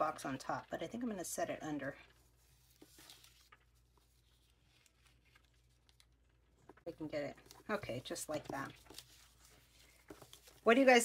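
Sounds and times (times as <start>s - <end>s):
faint ticks and paper rustles: 1.8s - 11.0s.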